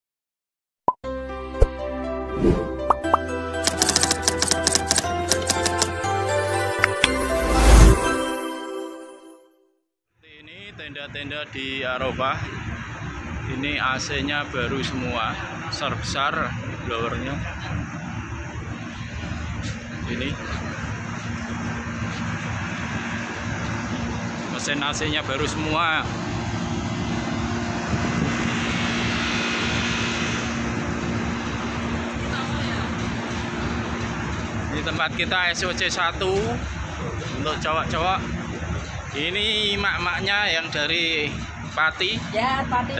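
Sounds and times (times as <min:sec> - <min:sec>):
intro music: 0:01.1 - 0:09.5, 0:23.0 - 0:34.8
keyboard typing clicks: 0:03.6 - 0:06.0
air conditioning fans droning: 0:11.2 - 0:42.9.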